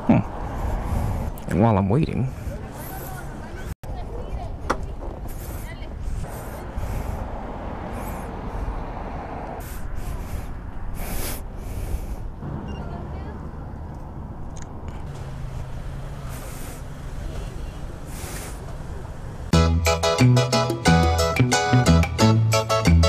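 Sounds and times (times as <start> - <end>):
road traffic: 0.0 - 23.0
vehicle engine hum: 2.1 - 19.6.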